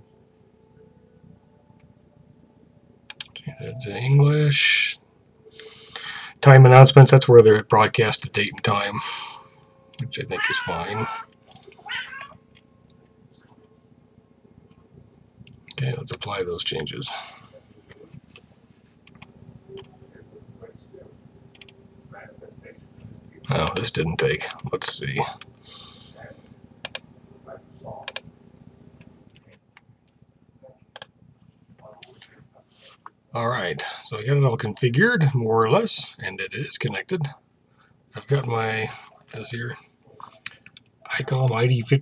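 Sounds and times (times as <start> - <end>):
high-pitched cry: 10.3 - 12.4
computer mouse clicking: 19.0 - 19.3, 21.5 - 21.8, 26.8 - 27.0, 28.0 - 28.2, 30.9 - 31.1.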